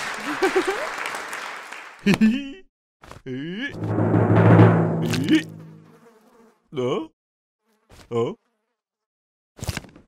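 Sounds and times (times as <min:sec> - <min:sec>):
drum roll ending in crash: 0:03.8 - 0:05.8.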